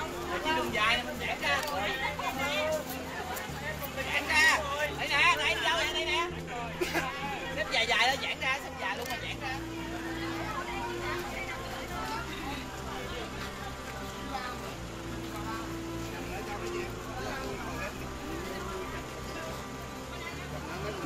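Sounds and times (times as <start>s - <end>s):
music with low held notes: 0.0s - 21.0s
people talking: 0.0s - 21.0s.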